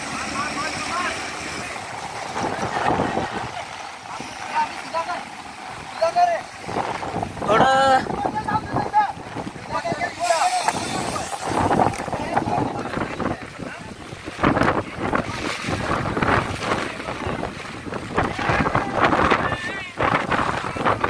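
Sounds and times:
wind noise on microphone: 0:00.0 - 0:04.5, 0:05.5 - 0:21.0
people calling out and talking: 0:00.0 - 0:21.0
running floodwater: 0:00.0 - 0:21.0.

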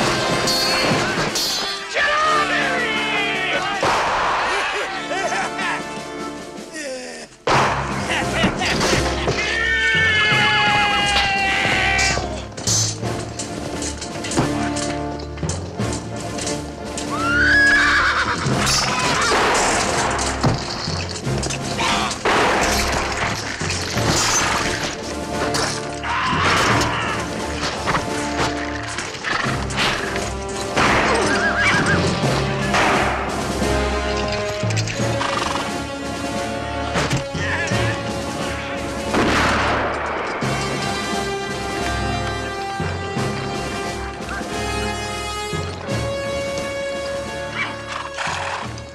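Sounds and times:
film score music: 0:00.0 - 0:48.9
horses neighing: 0:08.1 - 0:13.0, 0:17.0 - 0:32.8, 0:33.8 - 0:36.1, 0:47.3 - 0:48.9.

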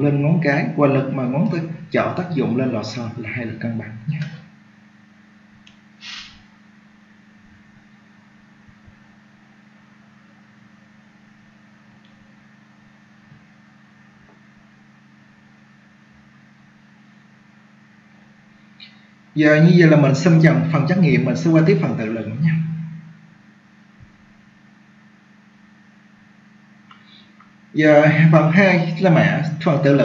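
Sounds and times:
low hum with faint hiss: 0:00.0 - 0:30.0.

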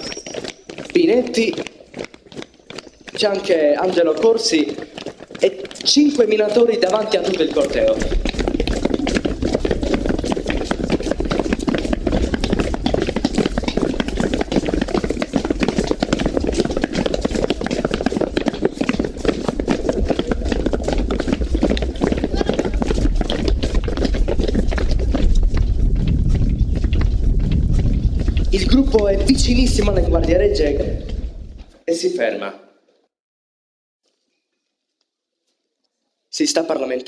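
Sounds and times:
footsteps on pavement: 0:00.0 - 0:31.8.

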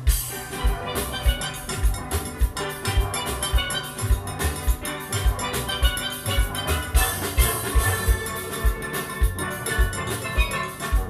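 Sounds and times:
low drum beat: 0:00.0 - 0:11.0
steel band playing: 0:00.0 - 0:11.0.

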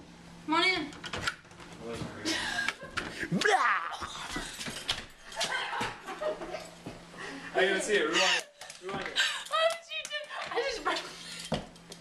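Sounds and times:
woman giggling: 0:02.2 - 0:03.0, 0:05.4 - 0:06.8.

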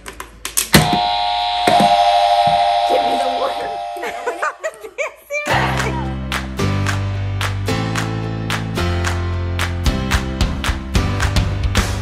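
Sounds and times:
electronic buzzer tone: 0:00.8 - 0:04.6.

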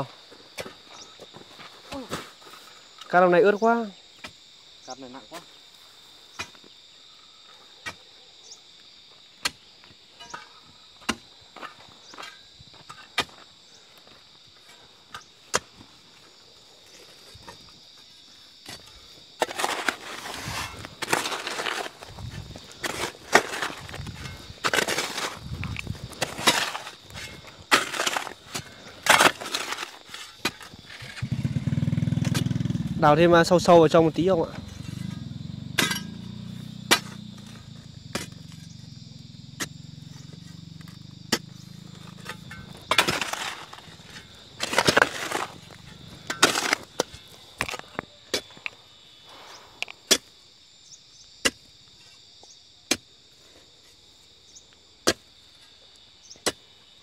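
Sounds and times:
hoe and crowbar striking stony soil: 0:06.3 - 0:06.7, 0:09.4 - 0:16.0, 0:18.6 - 0:32.8, 0:34.6 - 0:38.8, 0:39.5 - 0:50.4, 0:51.4 - 0:53.1, 0:55.0 - 0:56.7.

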